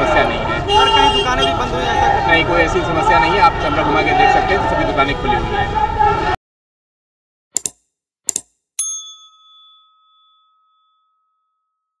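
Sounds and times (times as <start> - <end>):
bell ding: 8.8 - 12.0.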